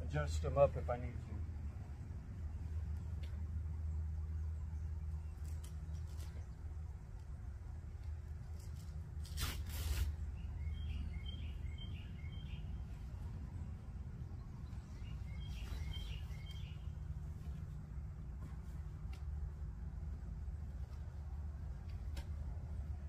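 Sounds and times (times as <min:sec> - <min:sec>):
low outdoor rumble: 0:00.0 - 0:23.0
brief rustle or scrape: 0:08.6 - 0:10.2
bird chirping: 0:10.2 - 0:17.6.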